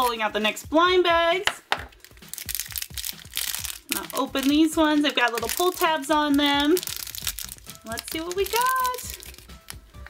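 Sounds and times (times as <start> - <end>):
plastic bag crinkling: 1.9 - 10.0.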